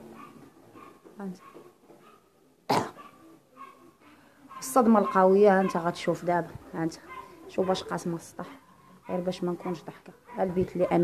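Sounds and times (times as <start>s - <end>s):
person clearing throat: 2.7s - 3.0s.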